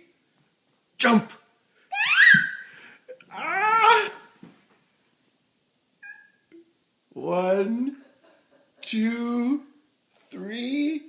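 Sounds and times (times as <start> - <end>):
toddler squealing: 1.9 - 2.7, 6.0 - 6.4.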